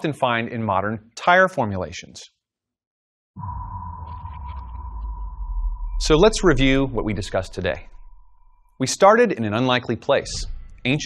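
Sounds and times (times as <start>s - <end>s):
synthesized drone: 3.4s - 8.7s.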